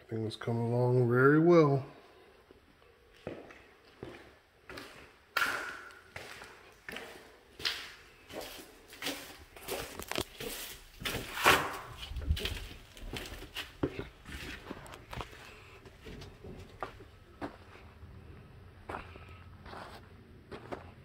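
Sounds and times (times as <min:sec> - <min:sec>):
footsteps: 0:02.5 - 0:18.0, 0:18.8 - 0:21.0.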